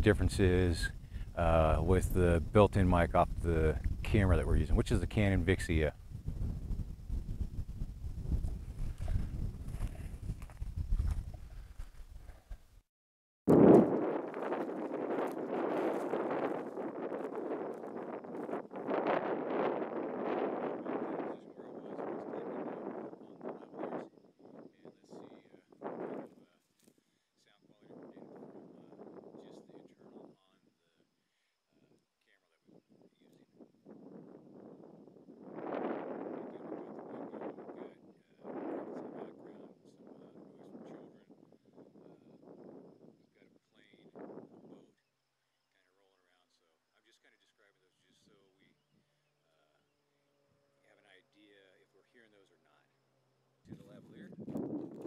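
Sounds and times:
wind buffeting microphone: 0.0s - 12.5s, 13.5s - 26.4s, 32.7s - 43.3s, 53.7s - 55.0s.

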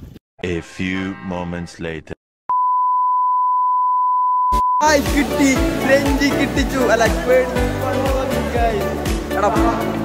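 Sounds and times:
steady test tone beep: 2.5s - 4.8s.

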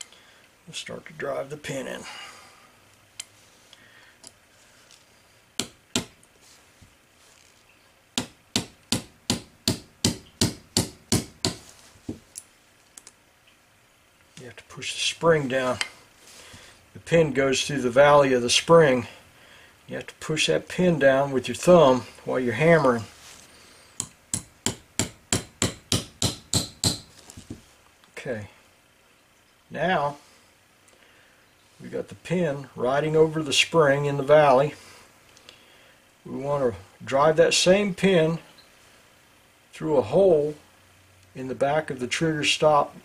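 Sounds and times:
small hammer tapping steel pin: 24.0s - 27.1s.

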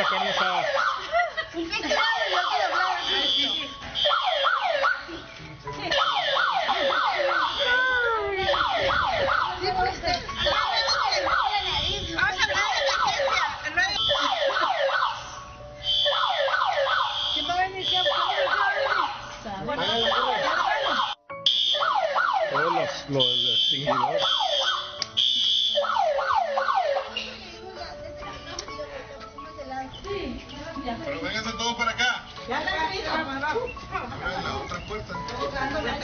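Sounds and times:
electronic alarm siren: 0.0s - 1.1s, 2.0s - 5.1s, 5.9s - 27.2s.

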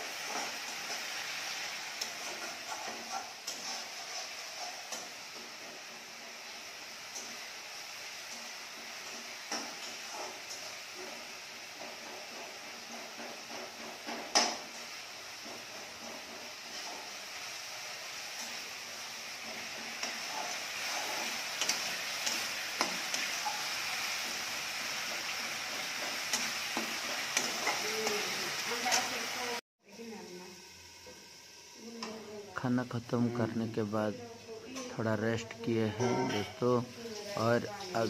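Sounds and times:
paste sizzling in oil: 0.0s - 38.0s
ladle scraping pan: 0.1s - 5.8s, 19.2s - 29.1s.

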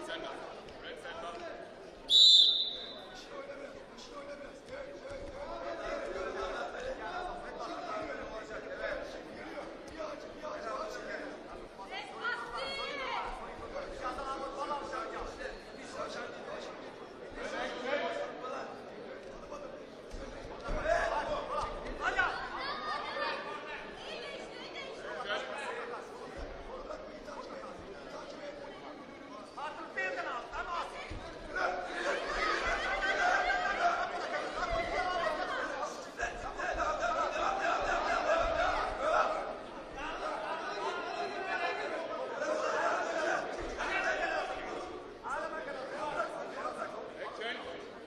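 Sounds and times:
people talking and calling out: 0.0s - 48.0s
voices chattering in a hall: 0.0s - 48.0s.

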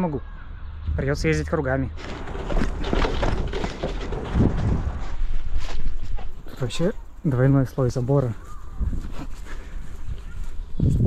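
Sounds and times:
bike rattling: 1.8s - 7.0s
bicycle tyres rumbling on dirt: 1.9s - 6.9s
wind on microphone: 3.0s - 6.4s, 8.4s - 11.0s.

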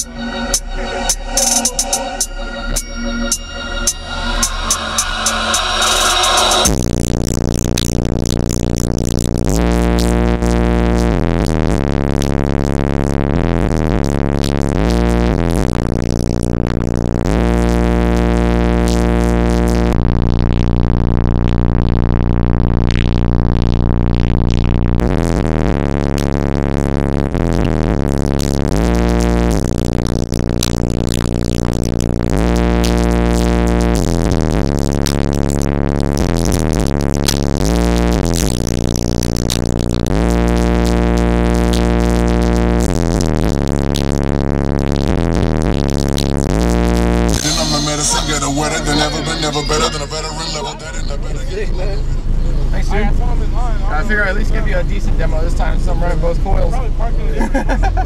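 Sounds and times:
bass-heavy electronic music: 0.0s - 58.0s.

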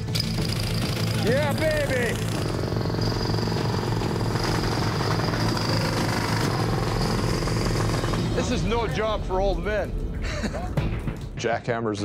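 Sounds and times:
jackhammer rattling: 0.0s - 8.4s.

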